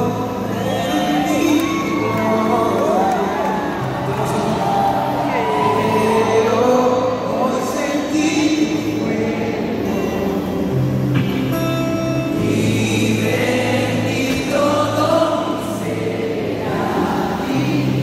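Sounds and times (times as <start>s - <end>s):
voices singing together: 0.0s - 10.9s, 12.3s - 18.0s
band playing through loudspeakers: 0.0s - 18.0s
guitars and bass: 0.0s - 18.0s.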